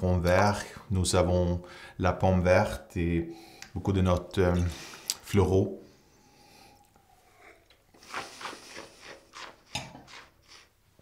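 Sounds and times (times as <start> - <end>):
wine slurping and swishing: 7.4 - 10.8.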